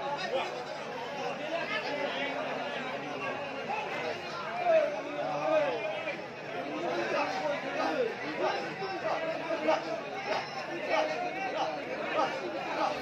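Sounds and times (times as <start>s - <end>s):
crowd of men talking and calling: 0.0s - 13.0s.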